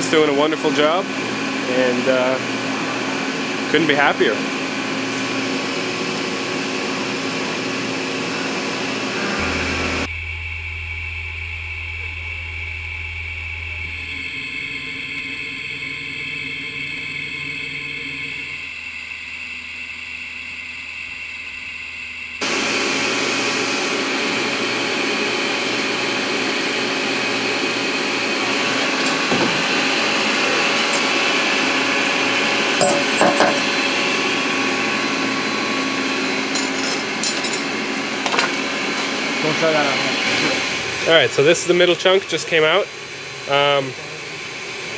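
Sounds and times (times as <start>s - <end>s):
milling machine cutting metal: 0.0s - 10.1s, 11.0s - 44.9s.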